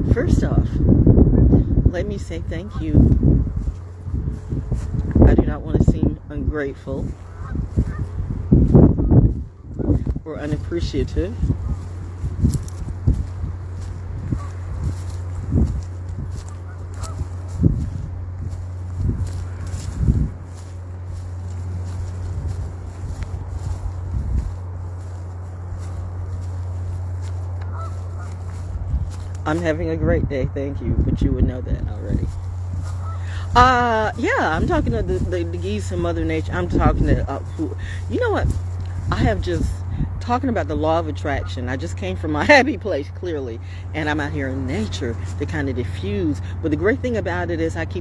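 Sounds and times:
low rumble: 0:00.0 - 0:42.4
geese honking: 0:06.9 - 0:29.7, 0:31.9 - 0:39.7.

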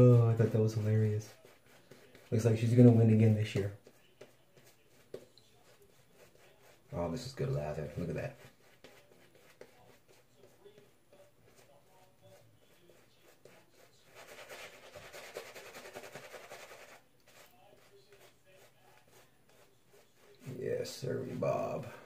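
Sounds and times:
shaving brush rubbing lather: 0:00.0 - 0:22.0.

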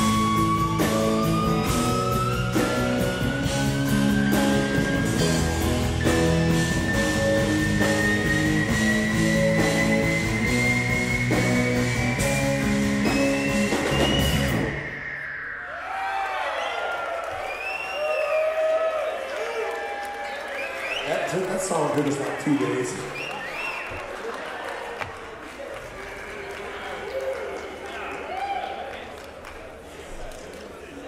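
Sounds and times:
rock band playing: 0:00.0 - 0:16.2
crowd cheering and whooping: 0:12.9 - 0:29.4.

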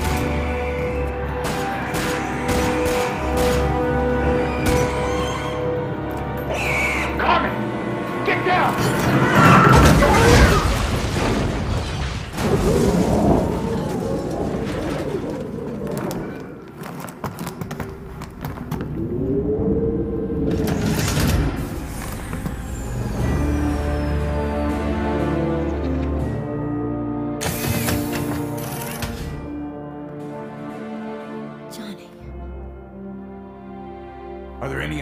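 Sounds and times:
dramatic music: 0:00.0 - 0:16.7, 0:18.8 - 0:35.0.

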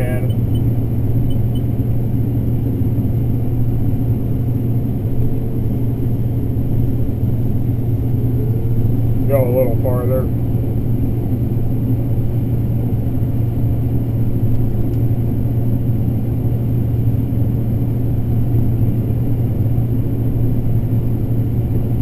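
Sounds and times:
combine harvester droning: 0:00.0 - 0:22.0.

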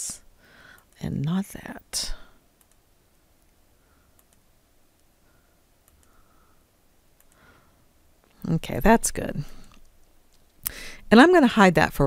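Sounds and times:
computer mouse clicks: 0:02.6 - 0:02.8, 0:04.1 - 0:05.1, 0:05.8 - 0:06.2, 0:07.2 - 0:07.4.

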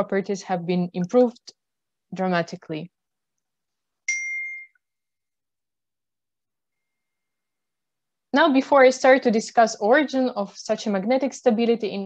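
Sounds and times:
electronic ding: 0:04.1 - 0:04.8.

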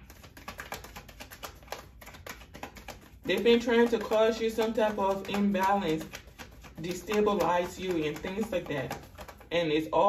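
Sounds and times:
cards being shuffled: 0:00.0 - 0:09.5.

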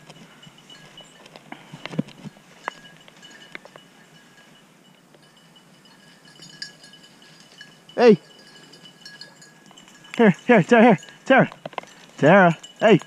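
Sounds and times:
dog collar bell jingling: 0:00.0 - 0:13.0.

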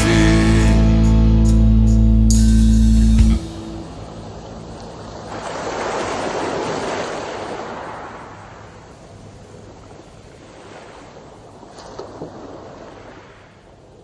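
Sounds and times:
waves washing up pebble beach: 0:05.3 - 0:08.5.

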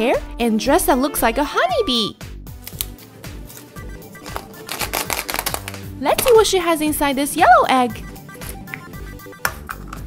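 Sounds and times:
soft background music: 0:00.0 - 0:10.0
plastic egg clicking and rattling: 0:04.2 - 0:06.3.

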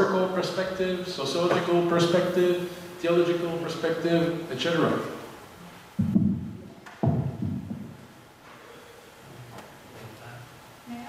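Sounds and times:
dull low thumps: 0:05.9 - 0:08.2.

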